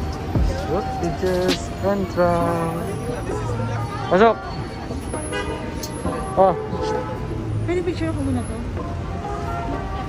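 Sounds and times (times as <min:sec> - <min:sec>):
busy street noise: 0:00.0 - 0:10.0.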